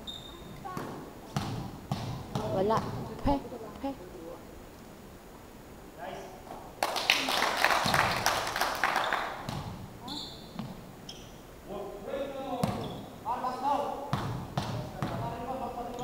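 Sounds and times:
basketball bouncing on wooden floor: 0.8s - 3.1s, 12.6s - 12.9s, 14.1s - 15.2s
clapping and shouting: 6.8s - 9.4s.

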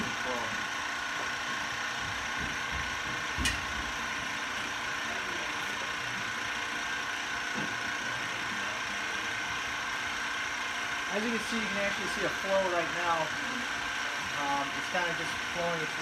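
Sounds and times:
pump humming: 0.0s - 16.0s.

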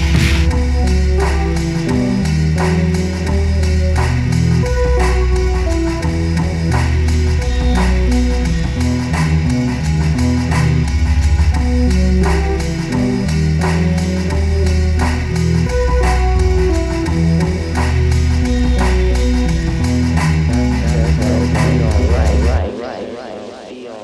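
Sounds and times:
breakcore electronic music: 0.0s - 0.9s, 20.6s - 24.0s.

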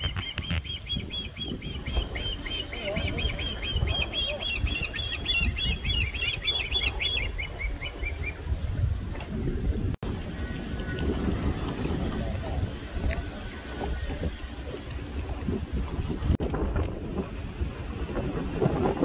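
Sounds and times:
osprey whistled chirps: 0.0s - 8.4s.

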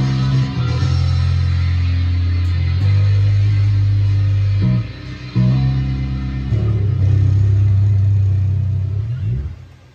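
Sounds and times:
sustained bass guitar note: 0.0s - 9.6s.

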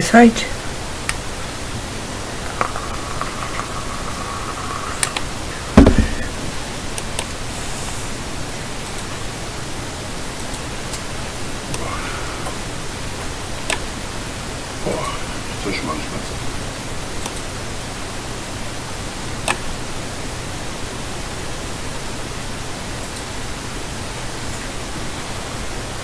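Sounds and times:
static hiss: 0.0s - 26.0s
loud low thump: 5.6s - 6.4s.

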